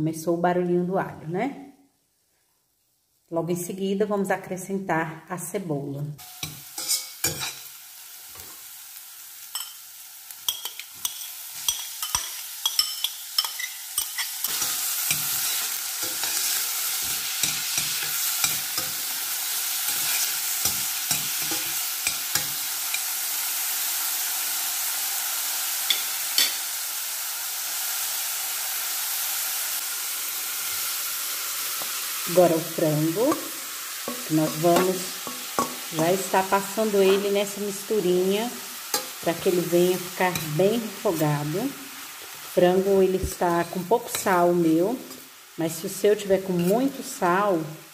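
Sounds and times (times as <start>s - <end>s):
spoon scraping and stirring pan: 6.2s - 8.7s, 9.4s - 23.2s, 25.9s - 26.6s, 33.2s - 37.5s, 38.7s - 42.6s, 46.4s - 47.1s
garlic sizzling in oil: 6.2s - 47.9s.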